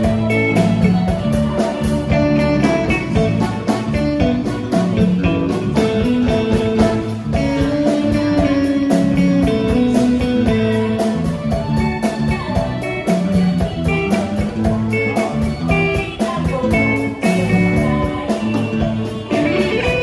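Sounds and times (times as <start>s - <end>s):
drum kit beat: 0.0s - 20.0s
electric guitar: 0.0s - 20.0s.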